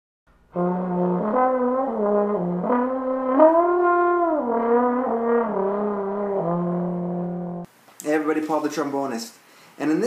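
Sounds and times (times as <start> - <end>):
trombone playing: 0.5 - 7.7.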